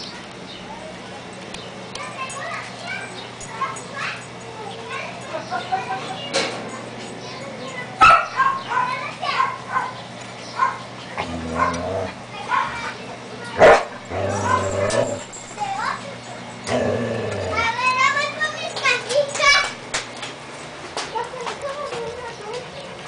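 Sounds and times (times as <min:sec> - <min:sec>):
puppies yipping and whining: 0:14.0 - 0:16.7.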